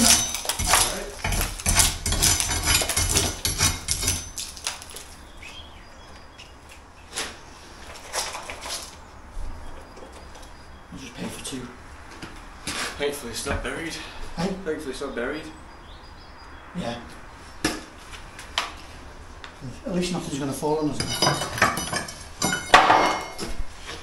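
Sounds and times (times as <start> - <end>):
steel bar knocking on brick: 0.0 - 4.4
debris clattering down: 0.0 - 5.1, 21.0 - 23.6.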